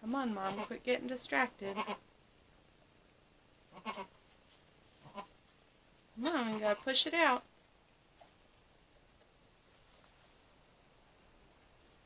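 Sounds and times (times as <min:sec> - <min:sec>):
person speaking: 0:06.2 - 0:07.5.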